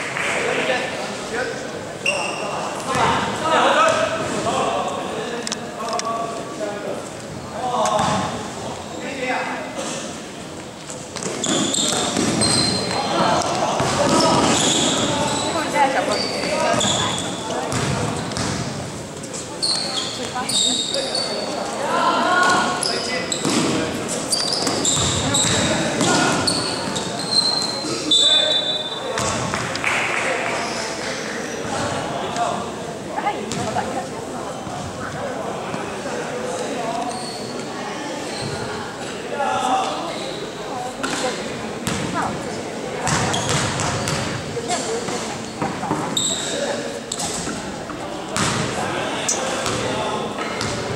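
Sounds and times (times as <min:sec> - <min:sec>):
voices in gym: 0:00.0 - 0:50.9
sneakers squeaking on court: 0:02.0 - 0:03.3, 0:11.2 - 0:21.7, 0:22.4 - 0:29.6, 0:33.5 - 0:35.1, 0:37.0 - 0:38.7, 0:41.0 - 0:42.3, 0:43.0 - 0:47.7, 0:48.4 - 0:50.9
basketball bouncing: 0:17.7 - 0:18.7, 0:24.6 - 0:26.2, 0:29.2 - 0:29.6, 0:43.1 - 0:44.4, 0:49.6 - 0:49.8, 0:50.6 - 0:50.9.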